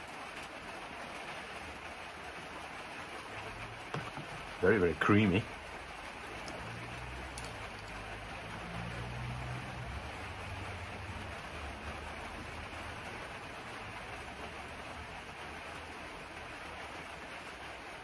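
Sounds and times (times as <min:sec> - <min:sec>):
steady rain: 0:00.0 - 0:18.0.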